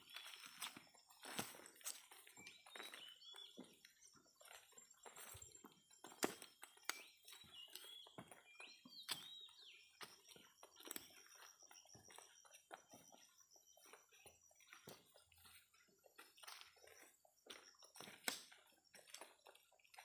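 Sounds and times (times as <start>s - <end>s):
footsteps crunching on dry leaves: 0.0s - 3.8s
high bird chirps: 6.7s - 12.3s.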